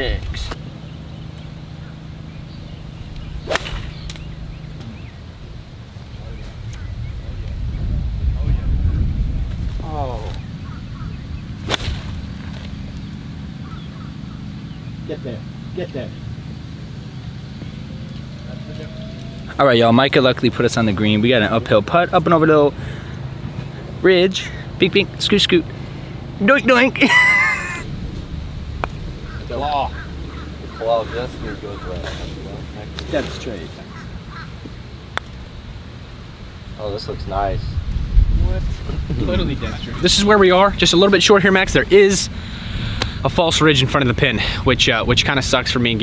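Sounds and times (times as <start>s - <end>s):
wind rumble on microphone: 2.6s - 14.1s, 27.8s - 32.7s, 36.4s - 46.0s
golf club striking ball: 3.2s - 4.6s, 11.6s - 12.2s.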